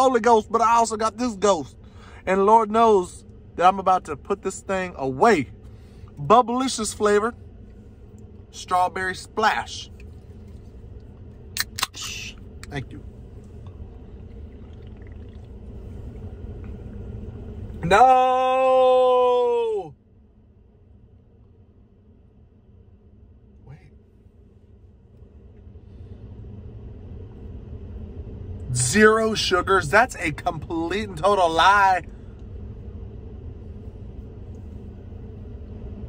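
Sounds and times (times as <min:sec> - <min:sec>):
low vehicle rumble: 0:00.0 - 0:36.0
steady low hum: 0:00.0 - 0:36.0.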